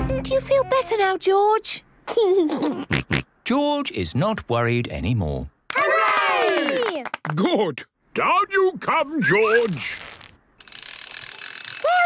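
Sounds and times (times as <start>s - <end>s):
rope whirring through pulley: 10.6s - 12.0s.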